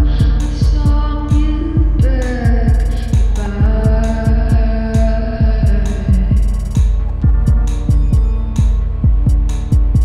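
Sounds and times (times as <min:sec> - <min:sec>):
kick drum pulsing: 0:00.0 - 0:10.0
ticking hi-hats: 0:00.0 - 0:10.0.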